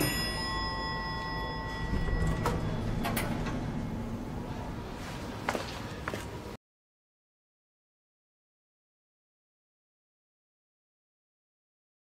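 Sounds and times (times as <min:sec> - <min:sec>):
elevator chime ding: 0:00.0 - 0:04.4
low rumble: 0:01.8 - 0:05.4.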